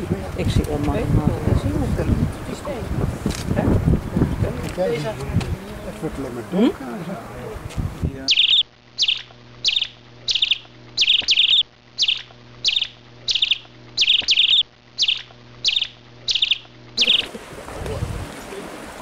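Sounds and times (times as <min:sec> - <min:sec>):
animal trilled chirps: 0:08.3 - 0:17.3.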